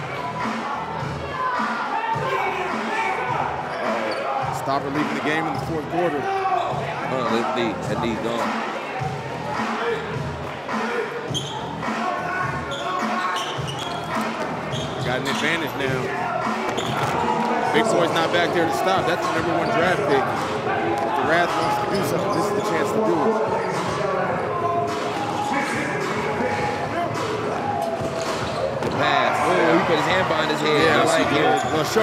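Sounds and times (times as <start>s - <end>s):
chatter of voices: 0.0s - 32.0s
high shoe squeaks: 3.7s - 4.4s, 11.3s - 11.9s, 12.6s - 16.0s, 16.6s - 17.3s, 19.2s - 20.0s, 21.4s - 23.9s, 31.0s - 32.0s.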